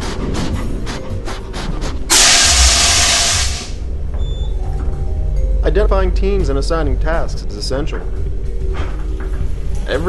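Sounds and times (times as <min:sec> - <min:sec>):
fire extinguisher hissing blast: 0:02.1 - 0:03.8.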